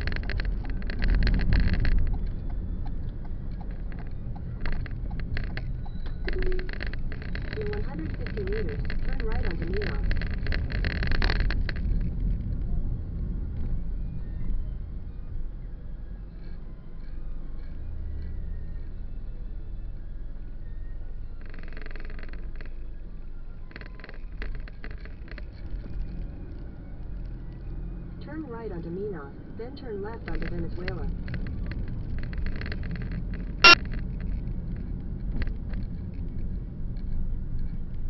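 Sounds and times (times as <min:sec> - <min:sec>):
car interior rattles: 0:00.0 - 0:12.4
car engine and tyre rumble: 0:00.0 - 0:38.0.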